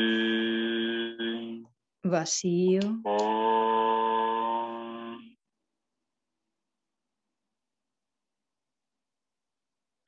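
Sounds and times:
man chanting a long tone: 0:00.0 - 0:01.7, 0:03.1 - 0:05.4.

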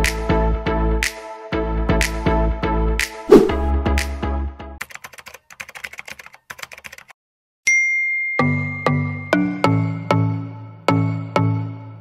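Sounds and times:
bell ding: 0:07.7 - 0:09.3.

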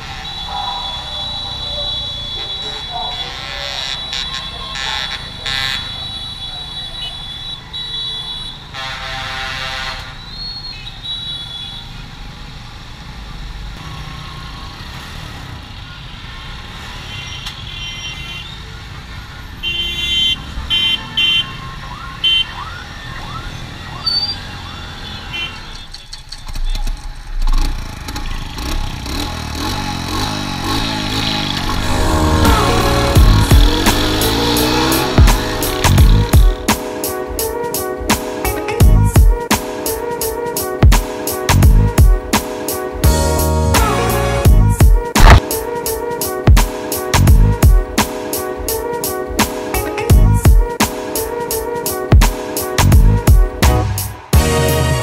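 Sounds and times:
horns beeping: 0:00.0 - 0:10.4, 0:30.5 - 0:47.6, 0:48.7 - 0:55.0
motorbike and car traffic: 0:00.0 - 0:55.0
music: 0:31.7 - 0:55.0.

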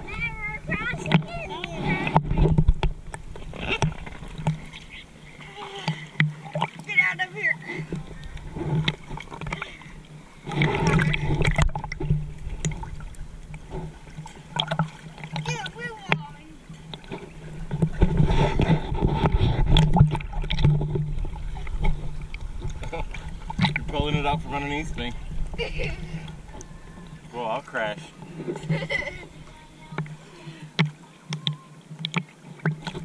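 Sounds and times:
small splashes: 0:00.0 - 0:33.0
water lapping and sloshing: 0:00.0 - 0:33.0.

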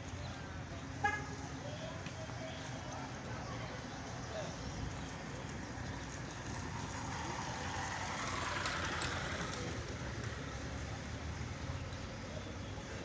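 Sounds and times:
motorcycle riding past on cobblestones: 0:06.2 - 0:11.1.

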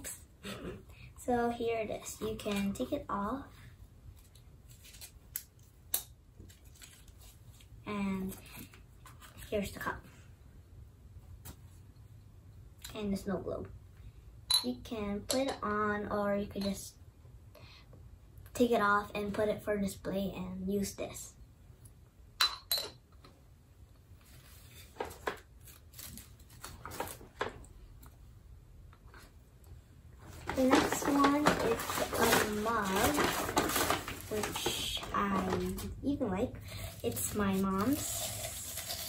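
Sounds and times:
faint handling noise: 0:30.2 - 0:36.0.

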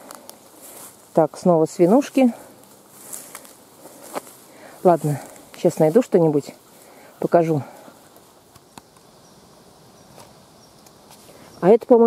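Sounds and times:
footsteps on forest floor: 0:00.0 - 0:09.2, 0:10.0 - 0:11.6
soft steady hiss: 0:00.0 - 0:12.0.

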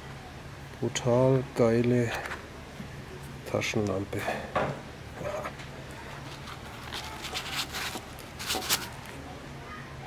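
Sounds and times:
fabric and nylon rustling: 0:06.0 - 0:09.2.

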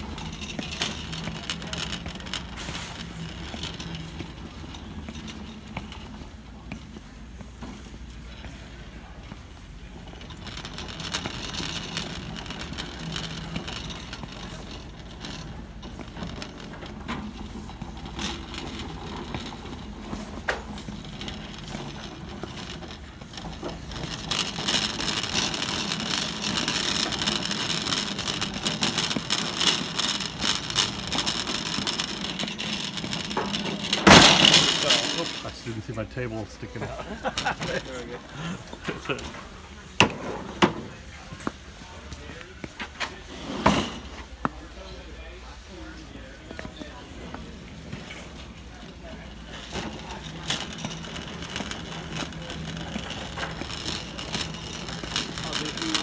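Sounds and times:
shopping cart rattling: 0:00.0 - 0:56.0.

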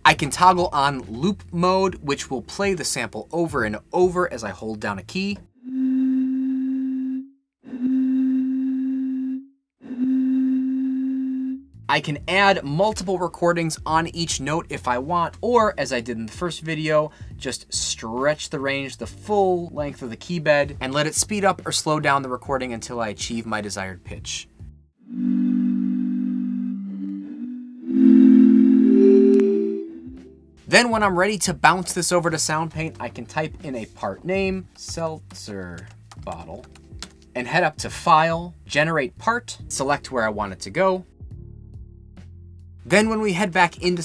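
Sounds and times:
sampled keyboard tone: 0:25.0 - 0:30.3.

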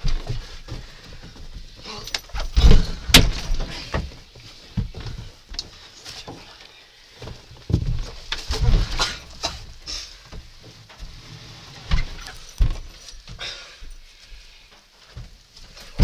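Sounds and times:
thuds and scuffling of wrestling: 0:00.0 - 0:06.6, 0:07.2 - 0:14.4.

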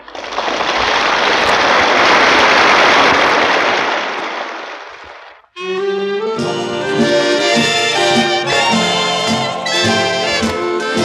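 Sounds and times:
audience applauding: 0:00.0 - 0:04.6, 0:06.4 - 0:11.0.

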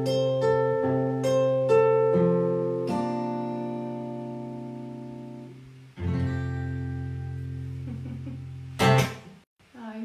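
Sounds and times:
acoustic guitar strumming: 0:00.0 - 0:09.4.

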